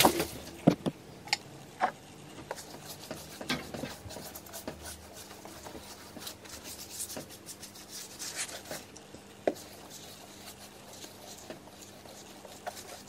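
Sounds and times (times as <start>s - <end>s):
paintbrush stroking paint: 2.5s - 8.9s, 9.5s - 13.0s.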